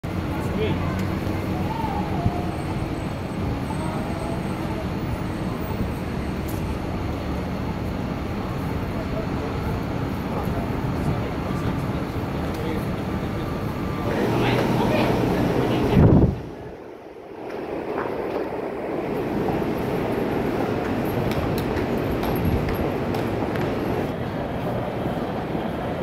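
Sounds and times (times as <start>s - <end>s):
road traffic rumble: 0.0s - 26.0s
voices of passers-by: 0.0s - 26.0s.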